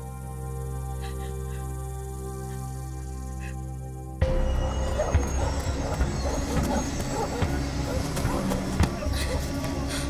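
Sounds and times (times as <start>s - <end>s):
dark film score: 0.0s - 10.0s.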